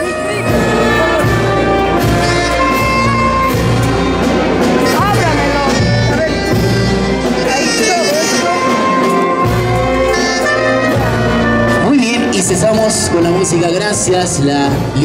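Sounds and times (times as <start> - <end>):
brass band playing dance music: 0.0 - 15.0.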